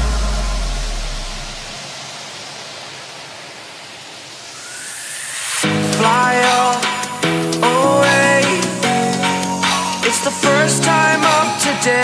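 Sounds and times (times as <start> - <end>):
deep bass note: 0.0 - 1.7
electronic noise hiss: 0.0 - 7.4.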